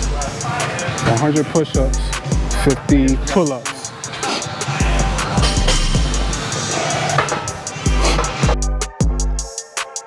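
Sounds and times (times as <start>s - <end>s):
drum-kit beat music: 0.0s - 10.0s.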